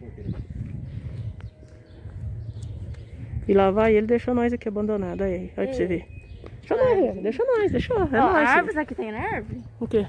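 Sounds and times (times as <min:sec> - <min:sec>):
footsteps on pavement: 0:00.0 - 0:05.2, 0:05.8 - 0:10.0
wind rumble on microphone: 0:00.0 - 0:10.0.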